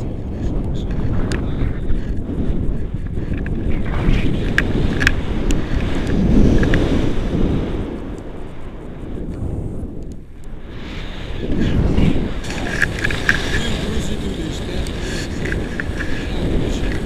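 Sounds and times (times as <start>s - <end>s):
wind buffeting microphone: 0.0s - 17.0s
light clicks: 0.5s - 2.2s, 3.0s - 6.9s, 12.4s - 17.0s.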